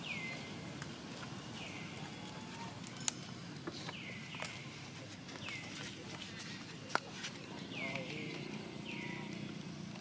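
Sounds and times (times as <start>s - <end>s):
low background murmur: 0.0s - 10.0s.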